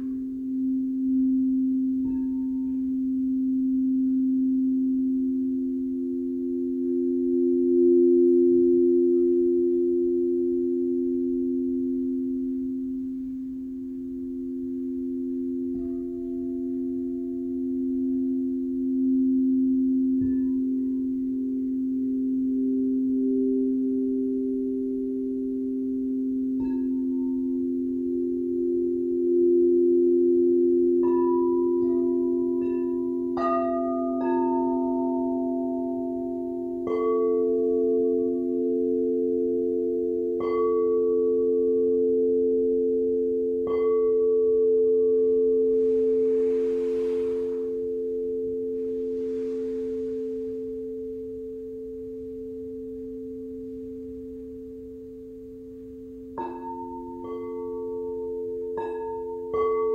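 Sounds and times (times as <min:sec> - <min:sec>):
higher singing bowls ringing: 0:00.0 - 0:59.9
low singing bowls sustaining tones: 0:00.0 - 0:59.9.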